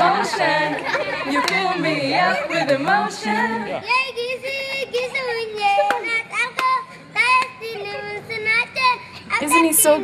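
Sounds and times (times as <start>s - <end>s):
children singing together: 0.0s - 9.0s.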